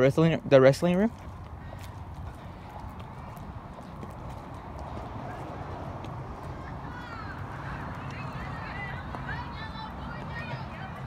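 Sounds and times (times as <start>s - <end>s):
footsteps on concrete: 0.2s - 11.0s.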